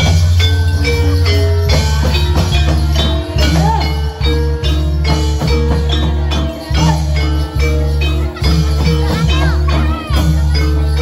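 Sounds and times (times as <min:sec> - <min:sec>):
heavy drum beat: 0:00.0 - 0:11.0
ringing metallophone melody: 0:00.0 - 0:11.0.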